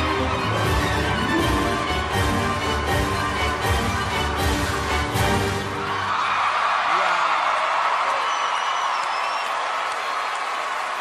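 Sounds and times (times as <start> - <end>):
audience applauding and cheering: 0.0 - 11.0
crowd whistle: 8.0 - 10.6.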